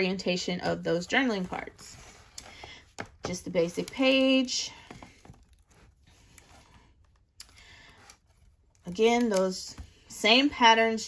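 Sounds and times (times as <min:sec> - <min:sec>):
album pages rustling and tapping: 0:00.5 - 0:11.0.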